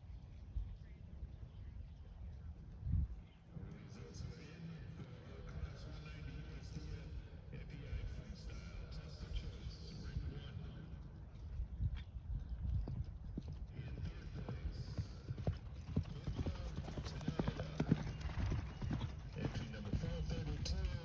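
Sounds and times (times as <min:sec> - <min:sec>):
horse hoofbeats on sand: 0:15.0 - 0:21.0.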